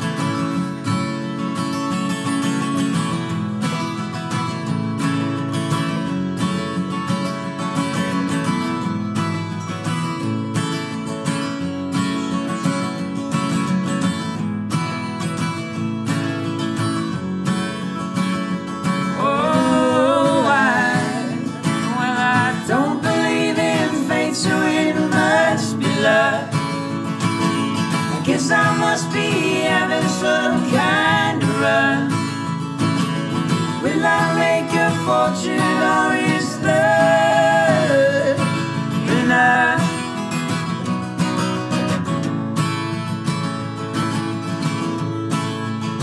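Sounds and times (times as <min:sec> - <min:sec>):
acoustic guitars strumming: 0:00.0 - 0:46.0
people singing: 0:19.0 - 0:40.8.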